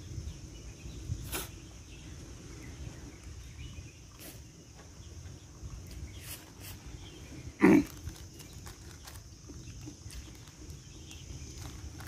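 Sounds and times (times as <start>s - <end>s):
throaty grunt while eating: 7.5s - 8.0s.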